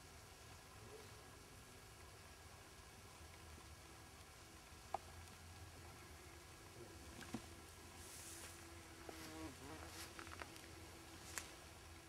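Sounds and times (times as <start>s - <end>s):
flying insect buzzing: 6.8s - 11.5s.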